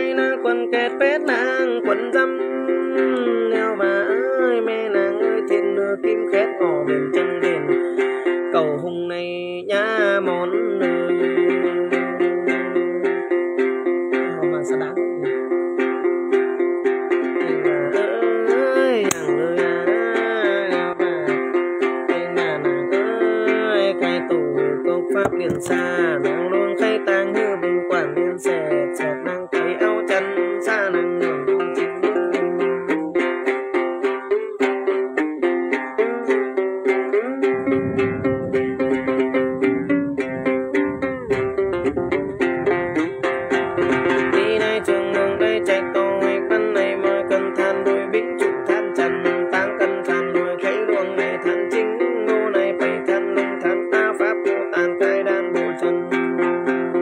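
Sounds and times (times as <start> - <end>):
lute plucked in fast rhythm: 0.0 - 57.0.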